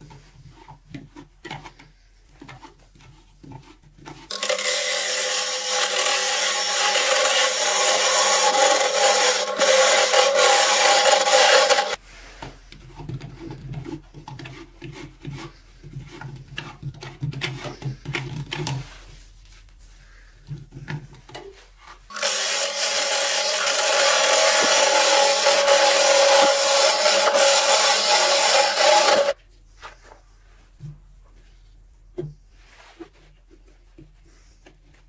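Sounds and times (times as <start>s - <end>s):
hand tool scraping wood: 0.0s - 19.1s, 20.1s - 29.4s
lathe gouge cutting hiss: 22.1s - 29.4s
lathe motor hum: 22.1s - 29.4s.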